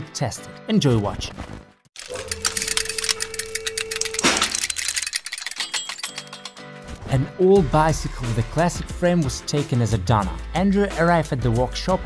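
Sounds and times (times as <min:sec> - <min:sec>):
short tones: 0:02.0 - 0:04.9
rapid clicking and ticking effects: 0:02.0 - 0:06.6.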